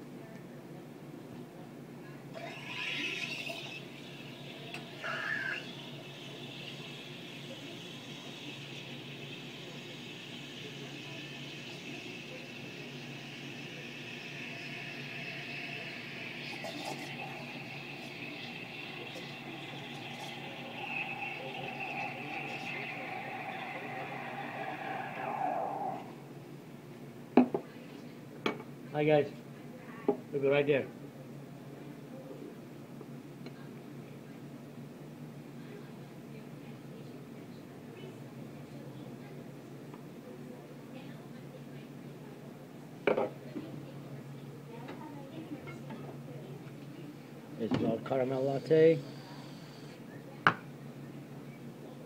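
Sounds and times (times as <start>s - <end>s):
steam wand hissing: 2.4s - 26.4s, 48.4s - 50.0s.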